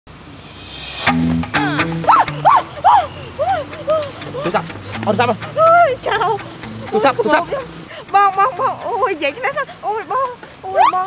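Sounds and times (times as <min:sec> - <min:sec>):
small dog yelping: 0:02.0 - 0:03.2.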